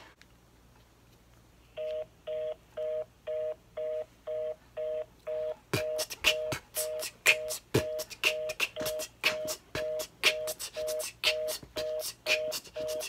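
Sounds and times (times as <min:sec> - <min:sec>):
telephone busy signal: 0:01.8 - 0:13.0
sharp percussive beats: 0:05.8 - 0:13.0.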